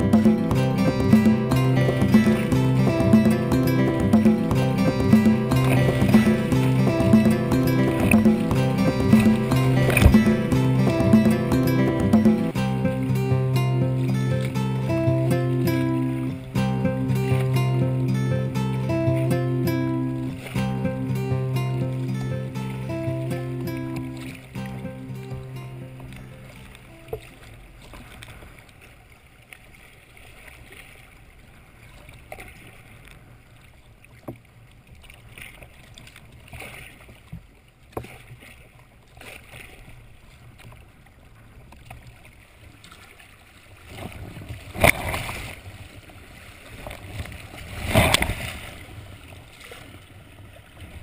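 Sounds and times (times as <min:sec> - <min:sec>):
sharp loud hit: 0:00.0 - 0:12.6
background guitar music: 0:00.0 - 0:27.4
river water rushing past kayak: 0:00.0 - 0:33.9, 0:42.4 - 0:51.0
water splashing: 0:00.0 - 0:51.0.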